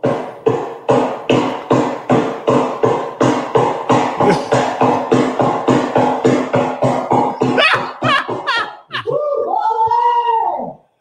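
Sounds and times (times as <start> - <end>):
man chanting rapid syllables: 4.2 - 4.7.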